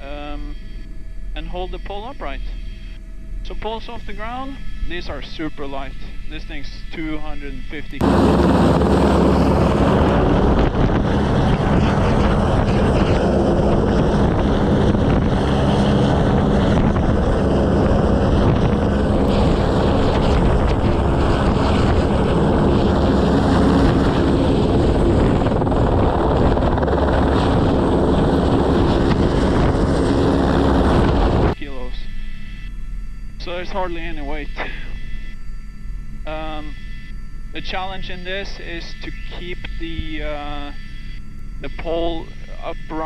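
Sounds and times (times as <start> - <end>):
helicopter rotor and engine: 0.0 - 43.0
wind buffeting microphone: 8.0 - 31.6.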